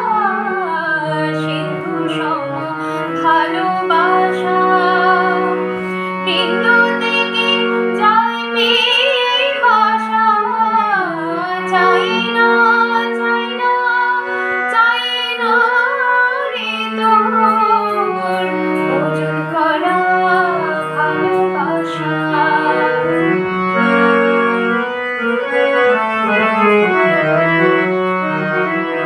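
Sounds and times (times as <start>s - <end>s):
woman singing: 0.0s - 23.4s
long held accompaniment notes: 0.0s - 29.0s.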